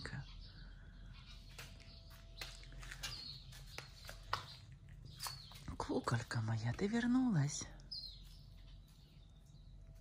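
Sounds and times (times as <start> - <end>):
high bird chirp: 0.0 - 10.0.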